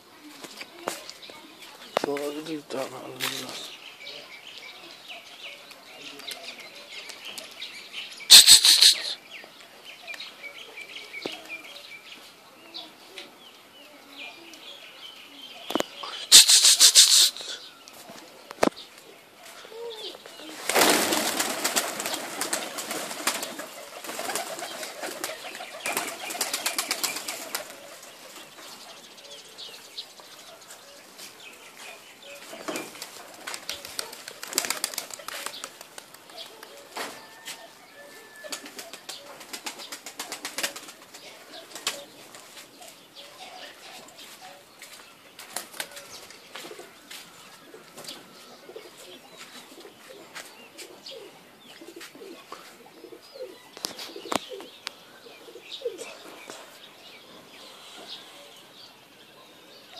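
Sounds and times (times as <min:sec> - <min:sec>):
pigeon wings flapping: 0:20.5 - 0:28.1, 0:32.8 - 0:37.0, 0:38.4 - 0:42.1.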